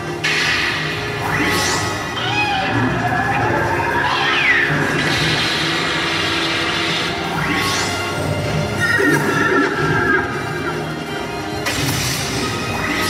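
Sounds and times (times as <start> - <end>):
synthesized sci-fi sound effects: 0.1 - 11.0.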